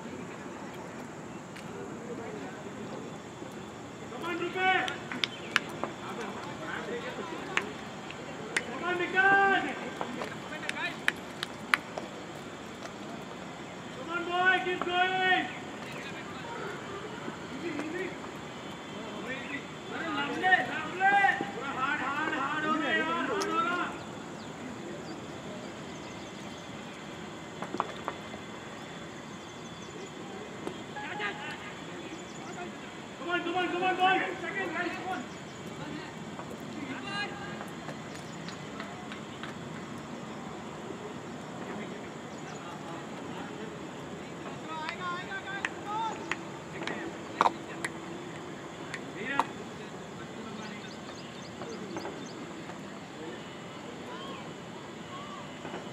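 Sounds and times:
steady background hiss: 0.0 - 55.9.

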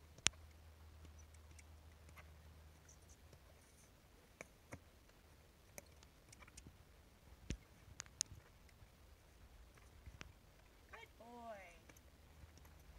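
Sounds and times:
faint clicks: 0.0 - 6.8, 7.4 - 8.9, 9.6 - 11.0.

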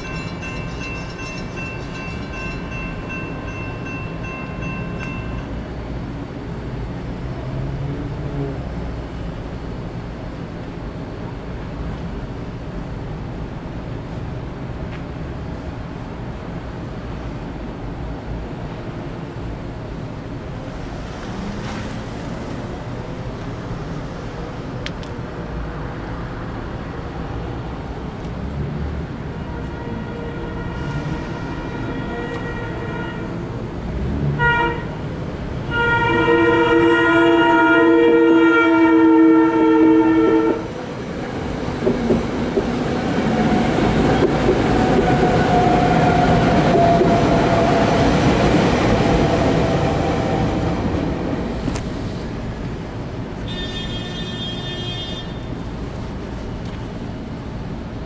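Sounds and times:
electronic crossing warning bell: 0.0 - 5.6
train wheels rumbling and clattering: 0.0 - 7.2, 38.7 - 53.5
train horn blasts: 29.4 - 33.6, 34.4 - 35.0, 35.7 - 40.8, 53.5 - 55.4.

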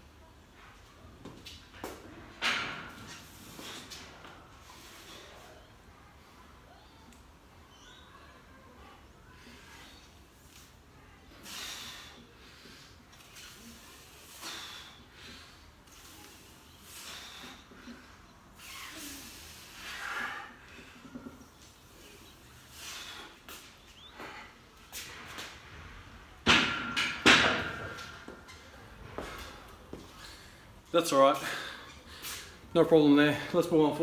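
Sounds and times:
hard breaths: 11.3 - 21.3.

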